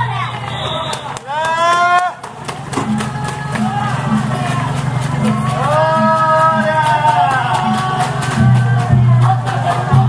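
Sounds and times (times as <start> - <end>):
steady drumming: 0.0 - 10.0.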